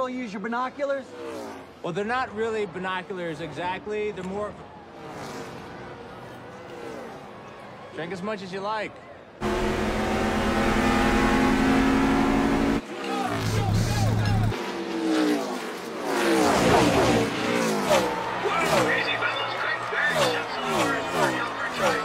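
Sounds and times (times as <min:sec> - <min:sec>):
race car engines droning: 0:00.0 - 0:22.0
race cars passing by: 0:00.0 - 0:22.0.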